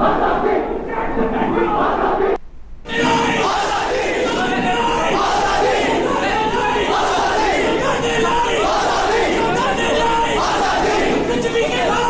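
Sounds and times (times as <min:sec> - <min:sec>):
crowd of men shouting slogans: 0:00.0 - 0:12.0.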